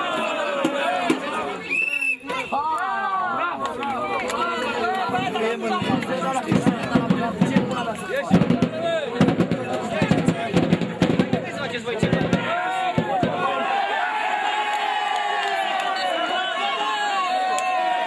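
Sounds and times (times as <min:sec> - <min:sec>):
players and spectators shouting: 0:00.0 - 0:18.0
sharp knocks and claps: 0:03.6 - 0:12.4.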